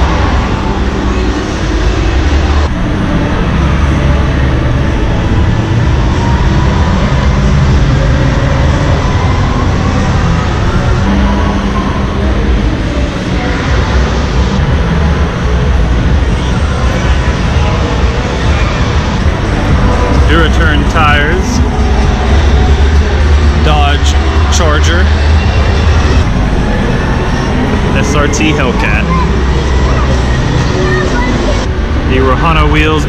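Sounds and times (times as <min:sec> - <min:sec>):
crowded hall din: 0:00.0 - 0:33.0.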